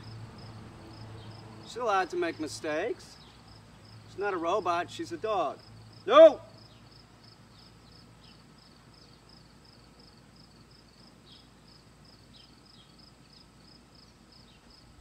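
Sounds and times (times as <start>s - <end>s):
insect chirping: 0.0s - 15.0s.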